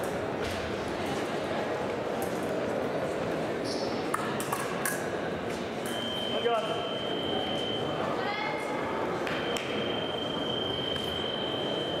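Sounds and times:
scoring machine beep: 5.9 - 8.0, 9.4 - 12.0.

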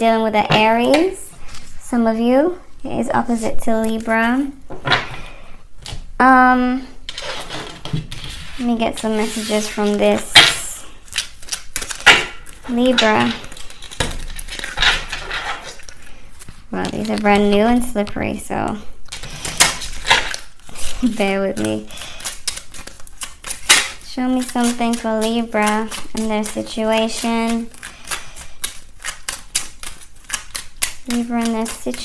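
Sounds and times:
cards shuffling: 7.1 - 18.4, 19.1 - 32.0.

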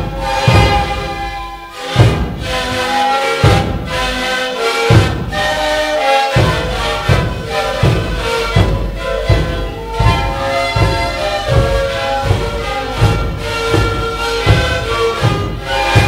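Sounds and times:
bass drums beating steadily: 0.0 - 2.8, 6.4 - 16.0
panpipes playing held notes: 0.0 - 16.0.

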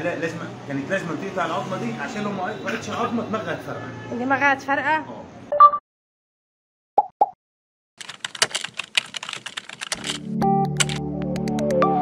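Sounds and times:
keyboard typing clicks: 8.0 - 11.6
synthesizer music: 10.2 - 12.0.

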